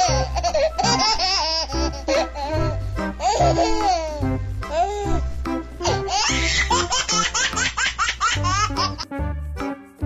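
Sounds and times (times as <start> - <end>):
baby laughing: 0.0 - 5.2, 5.8 - 9.1
cheerful children's music: 0.0 - 10.0.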